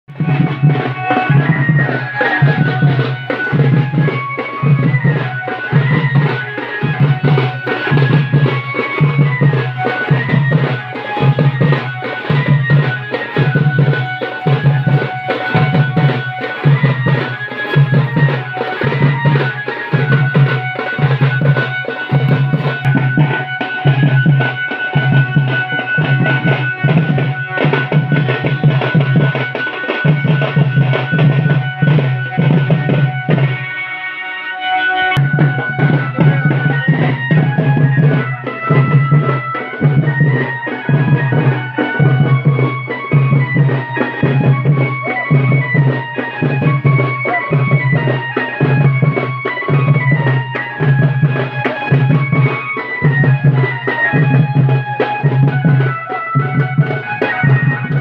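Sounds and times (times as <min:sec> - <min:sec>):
folk dance music: 0:00.0 - 0:58.0
deep drums beating: 0:00.1 - 0:33.6, 0:35.2 - 0:58.0
higher melody line: 0:00.1 - 0:58.0.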